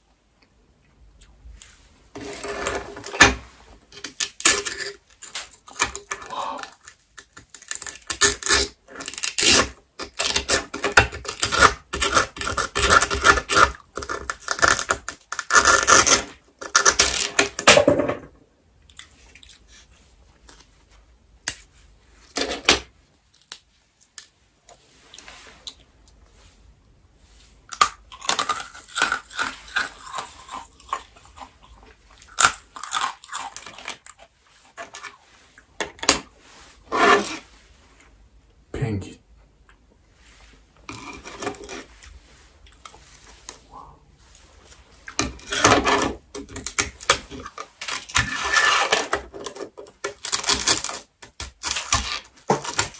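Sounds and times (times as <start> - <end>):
candy crunching and cracking: 3.9 - 17.7, 27.7 - 36.1, 45.0 - 52.9.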